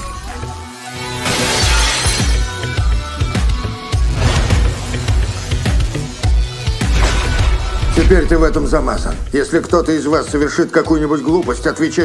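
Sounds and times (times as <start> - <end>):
trailer music with heavy bass: 0.0 - 11.2
glass shattering: 1.2 - 2.6, 6.8 - 9.3.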